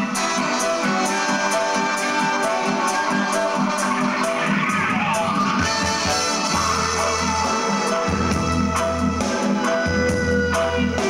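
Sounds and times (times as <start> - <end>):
brass: 0.0 - 11.0
drums: 0.0 - 11.0
electric bass guitar: 3.3 - 11.0.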